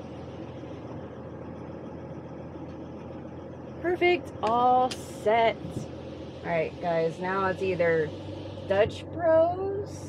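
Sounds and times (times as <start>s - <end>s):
van engine idling: 0.0s - 10.0s.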